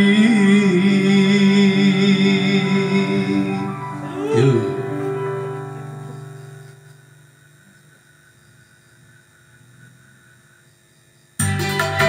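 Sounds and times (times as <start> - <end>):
keyboard chord: 0.0 - 7.2, 11.4 - 12.0
keyboard accompaniment with drum beat: 11.4 - 12.0.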